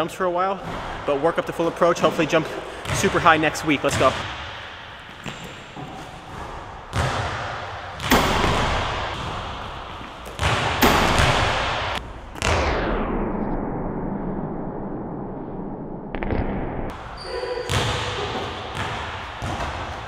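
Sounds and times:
basketball bouncing on hardwood floor: 0:05.1 - 0:12.5, 0:17.6 - 0:20.0
basketball dunk slamming rim: 0:06.3 - 0:09.7, 0:10.4 - 0:12.8, 0:17.7 - 0:19.9.

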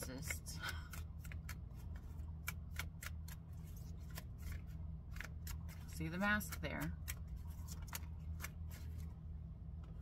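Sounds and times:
steady low hum: 0:00.0 - 0:10.0
cards snapping: 0:00.2 - 0:09.0.

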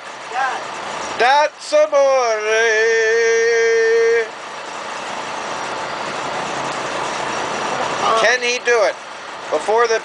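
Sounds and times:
boat engine running: 0:00.0 - 0:10.0.

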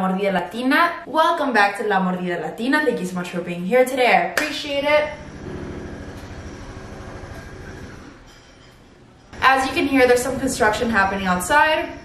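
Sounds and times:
construction machinery rumbling: 0:04.8 - 0:12.0.

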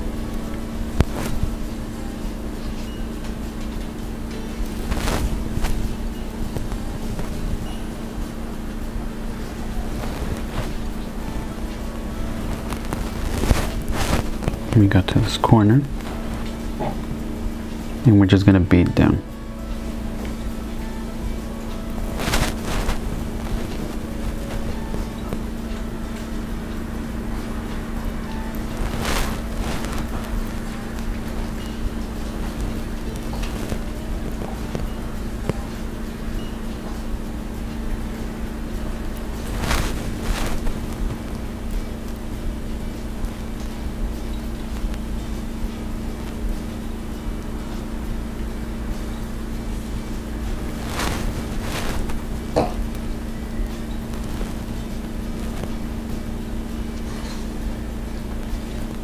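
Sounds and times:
faint background music: 0:00.0 - 0:59.0
steady low hum: 0:00.0 - 0:59.0
brief rustling: 0:22.0 - 0:24.8, 0:50.5 - 0:52.2.

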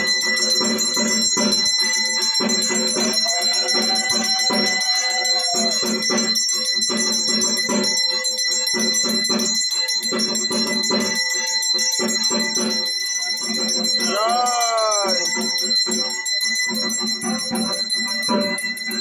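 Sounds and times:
brass hand bell ringing: 0:00.0 - 0:19.0
steady percussion beat: 0:00.0 - 0:19.0.

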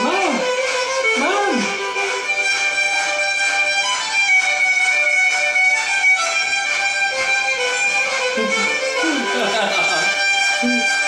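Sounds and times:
fiddle music: 0:00.0 - 0:11.0.

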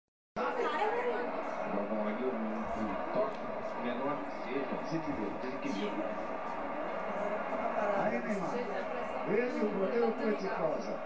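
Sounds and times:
voices chattering: 0:00.4 - 0:11.0.

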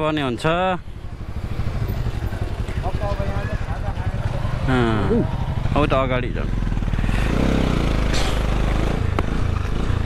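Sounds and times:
voices talking: 0:00.0 - 0:07.5
motorcycle engine idling: 0:00.1 - 0:10.0.

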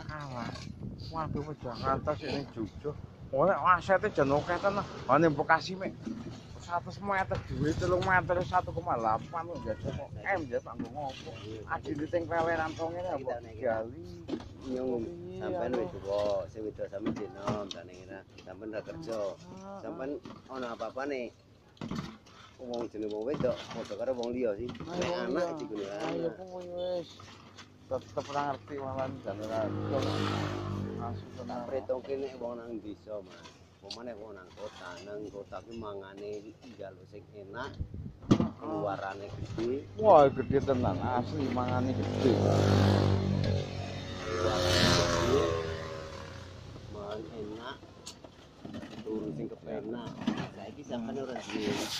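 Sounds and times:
people talking: 0:00.0 - 0:06.0, 0:06.6 - 0:21.3, 0:22.6 - 0:27.1, 0:27.9 - 0:37.8, 0:38.6 - 0:42.9, 0:44.3 - 0:45.8, 0:46.9 - 0:47.8, 0:49.0 - 0:51.9.

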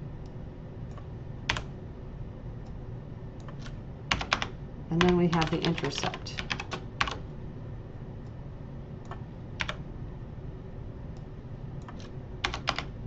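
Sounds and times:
low background hum: 0:00.0 - 0:13.0
computer keyboard keystrokes: 0:00.9 - 0:01.7, 0:03.4 - 0:07.2, 0:11.8 - 0:12.9.

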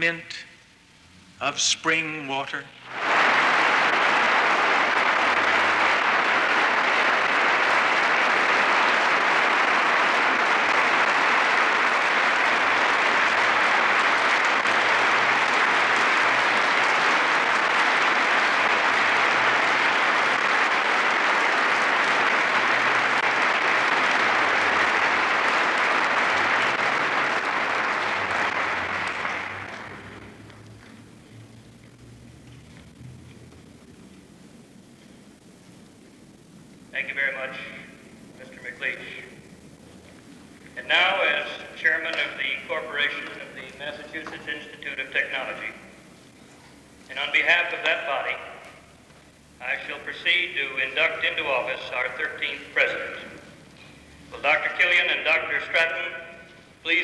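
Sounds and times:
audience applauding: 0:02.8 - 0:32.0.

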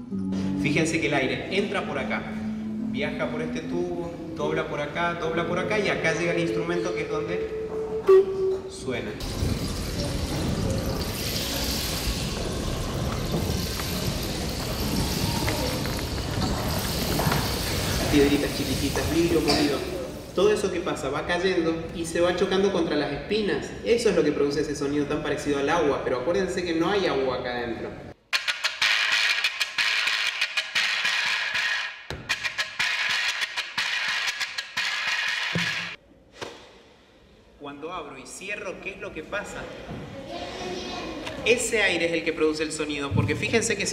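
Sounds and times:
rainstick pebbles trickling: 0:09.2 - 0:20.4.

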